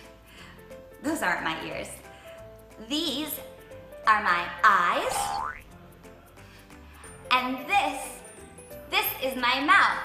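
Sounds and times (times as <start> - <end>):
soft background music: 0.0 - 10.0
upward-gliding cartoon tone: 5.1 - 5.7.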